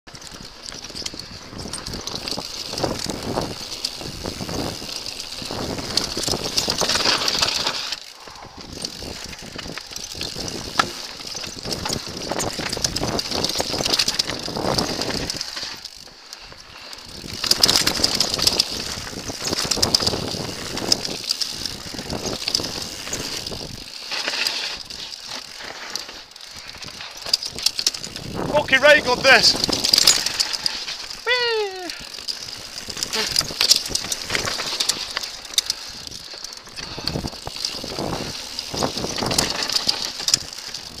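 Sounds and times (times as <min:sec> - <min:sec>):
bike rattling: 0:00.1 - 0:41.0
tyres crunching over dirt and stones: 0:08.7 - 0:31.3, 0:32.0 - 0:41.0.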